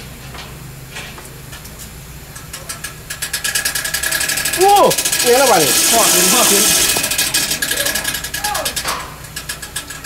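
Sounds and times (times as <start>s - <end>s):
sharp ratchet-like clicks: 2.3s - 10.0s.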